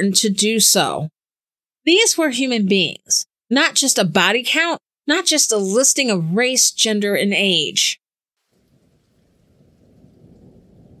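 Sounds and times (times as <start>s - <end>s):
faint low rumbling: 8.6s - 11.0s.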